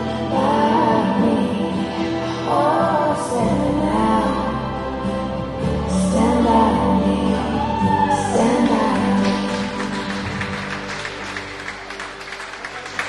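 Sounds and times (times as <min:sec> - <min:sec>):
song with held sung note: 0:00.0 - 0:10.9
people clapping: 0:07.9 - 0:13.0.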